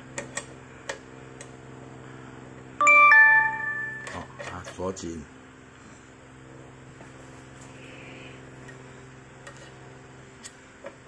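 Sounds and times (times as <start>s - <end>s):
steady low hum: 0.0s - 11.0s
two-note doorbell chime: 2.8s - 4.4s.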